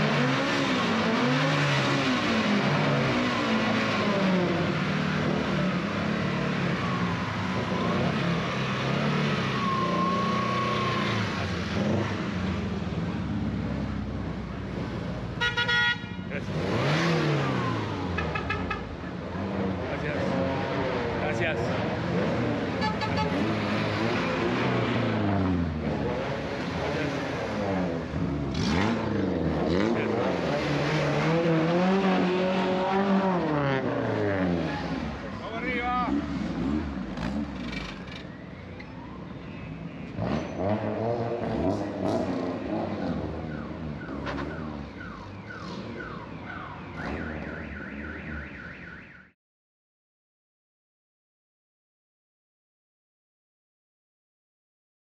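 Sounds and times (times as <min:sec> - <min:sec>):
car engines accelerating: 0:00.0 - 0:15.4, 0:16.3 - 0:48.8.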